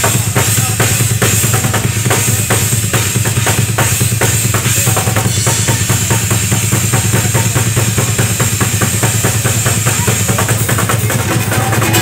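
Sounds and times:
drum kit solo: 0:00.0 - 0:12.0.

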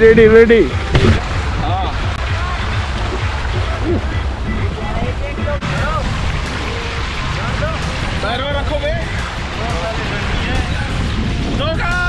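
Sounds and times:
rushing water: 0:00.0 - 0:12.0
voices: 0:00.0 - 0:12.0
wind noise: 0:00.0 - 0:12.0.

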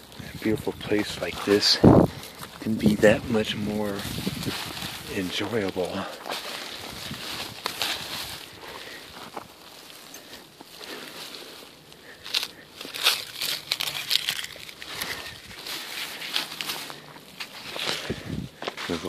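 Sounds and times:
plastic bag crinkling: 0:02.4 - 0:18.3.

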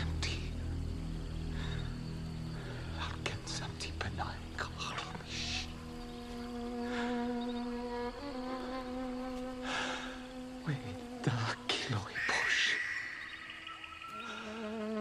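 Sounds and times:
low drone: 0:00.0 - 0:14.8
insect buzzing: 0:00.0 - 0:15.0
short hissing breaths: 0:09.6 - 0:10.2.

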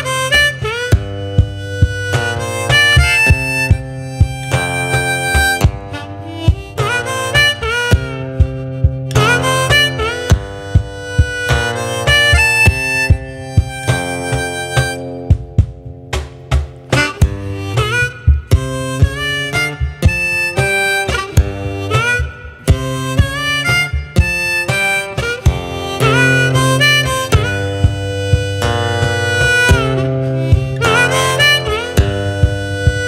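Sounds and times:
acoustic guitar bass notes: 0:00.0 - 0:33.0
harmonica playing folk melody: 0:00.0 - 0:33.0.

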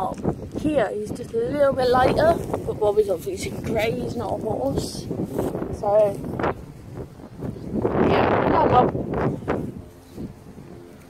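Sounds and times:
outdoor background: 0:00.0 - 0:11.0
wind noise on microphone: 0:00.0 - 0:11.0.

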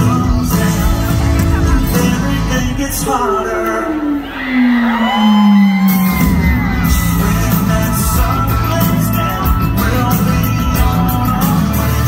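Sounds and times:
live country band music: 0:00.0 - 0:12.0
crowd whooping: 0:01.1 - 0:08.8.

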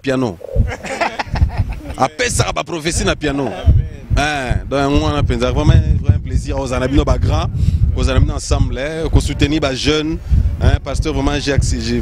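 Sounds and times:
men talking into a microphone: 0:00.0 - 0:12.0
low thumps on a microphone: 0:00.5 - 0:12.0.

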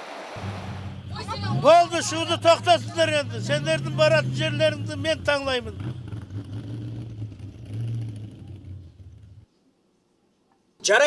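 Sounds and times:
minibus engine drone: 0:00.0 - 0:09.5.

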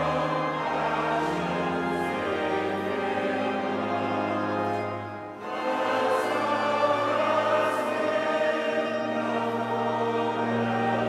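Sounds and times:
choir singing slow chords: 0:00.0 - 0:11.0
low steady accompaniment: 0:00.0 - 0:11.0.

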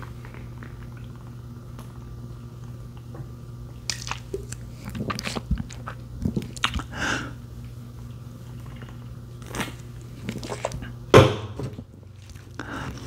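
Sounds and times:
steady low hum: 0:00.0 - 0:13.0
gulping and swallowing: 0:03.9 - 0:06.9
wet mouth clicks: 0:03.9 - 0:06.9.

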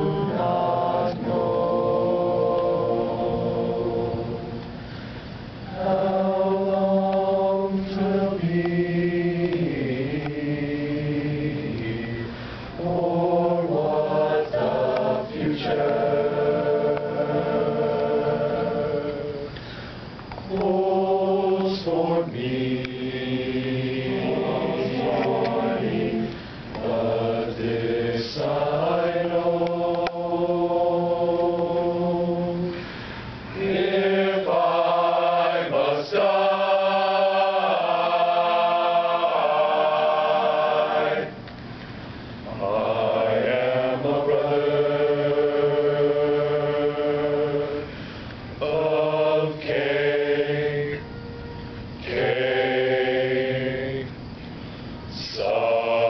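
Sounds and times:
chorus singing a hymn a cappella: 0:00.0 - 0:56.0.

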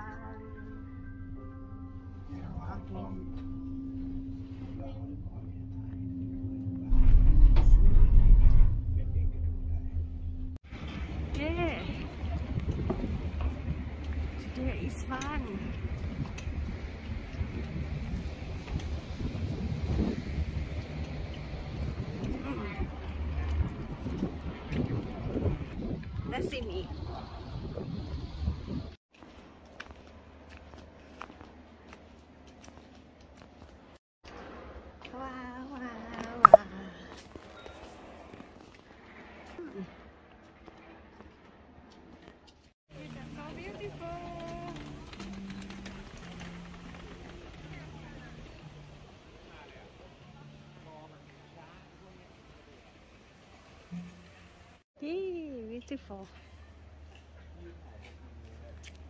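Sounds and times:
cable car low rumble: 0:00.0 - 0:28.9, 0:42.9 - 0:54.8
footsteps on wet tiles: 0:29.1 - 0:34.0.

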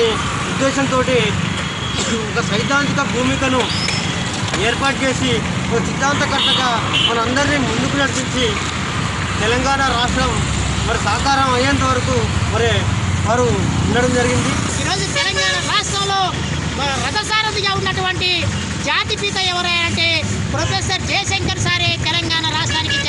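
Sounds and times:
man speaking: 0:00.0 - 0:01.4, 0:02.0 - 0:03.7, 0:04.6 - 0:08.7, 0:09.4 - 0:23.0.

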